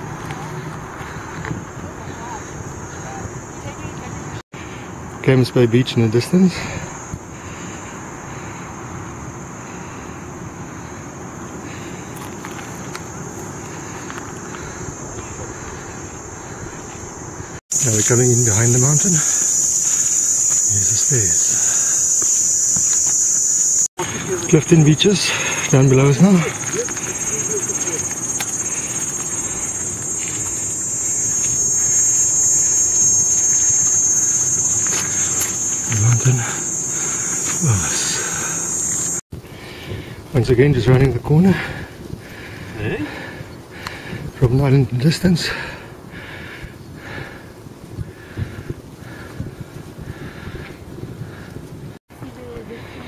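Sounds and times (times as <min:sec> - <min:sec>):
insects shrilling: 0:11.7 - 0:39.2
thin high whine: 0:17.7 - 0:39.2
wind on microphone: 0:45.9 - 0:53.0.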